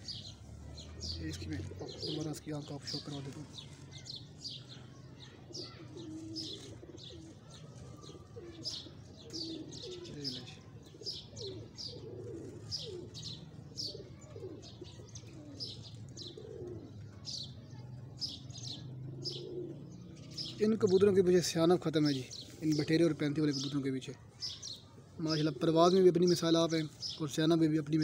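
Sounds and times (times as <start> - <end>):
pigeons cooing: 0.0 - 28.0
small birds chirping: 0.0 - 28.0.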